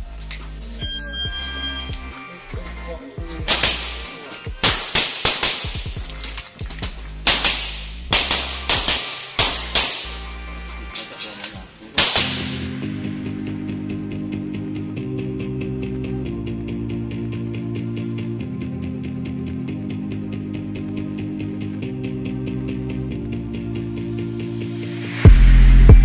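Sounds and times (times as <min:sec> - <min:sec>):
background music: 0:00.0 - 0:26.0
shot timer beep: 0:00.8 - 0:02.2
pistol shots: 0:03.4 - 0:06.5, 0:07.2 - 0:10.2, 0:12.0 - 0:12.7.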